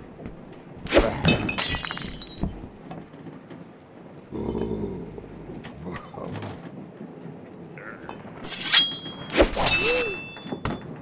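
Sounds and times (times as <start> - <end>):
glass bottle smashing: 1.3 - 2.5.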